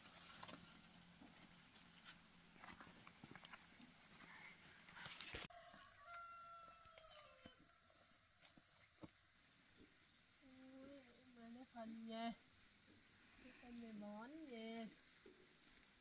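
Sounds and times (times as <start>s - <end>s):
rooster crowing faintly: 5.3s - 8.1s.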